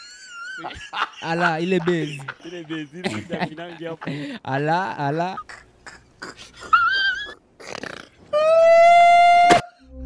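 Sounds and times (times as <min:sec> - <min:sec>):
high wavering cry: 0:05.5 - 0:07.4, 0:08.3 - 0:10.0
long howl-like cry: 0:08.3 - 0:09.9.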